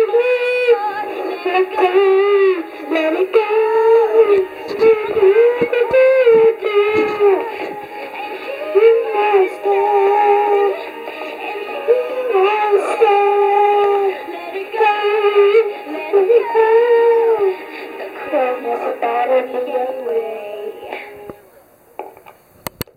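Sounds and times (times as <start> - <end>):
girl singing through toy microphone: 0.0 - 21.3.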